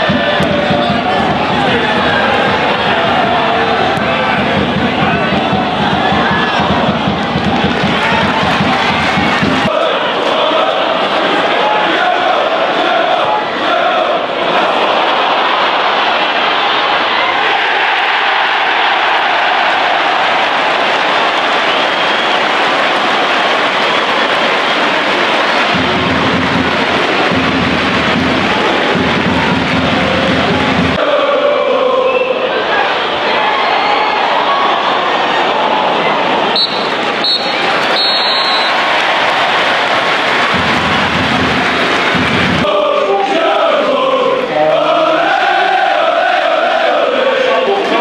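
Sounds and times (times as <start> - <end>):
crowd chanting and singing: 0.0 - 48.0.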